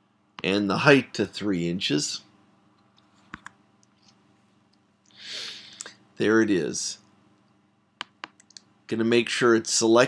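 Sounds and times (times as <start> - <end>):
computer mouse clicks: 7.4 - 8.7.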